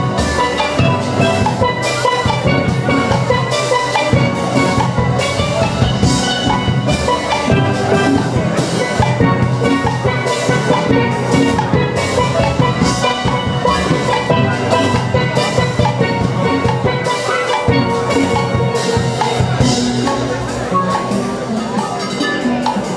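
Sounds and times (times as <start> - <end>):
drum kit beat: 0.0 - 22.9
steel pans playing melody: 0.0 - 22.9.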